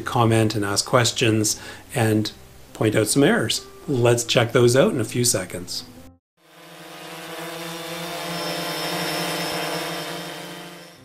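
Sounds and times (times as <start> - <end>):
drone propellers buzzing: 6.4 - 11.0.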